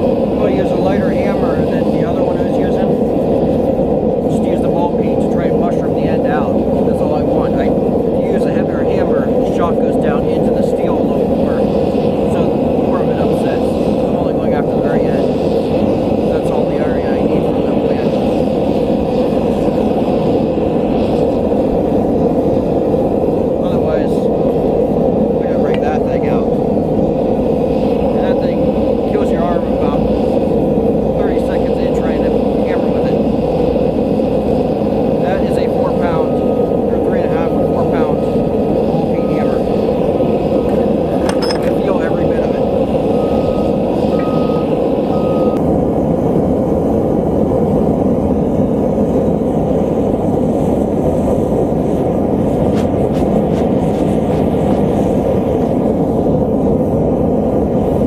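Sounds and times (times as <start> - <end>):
gas forge burner roaring: 0.0 - 58.0.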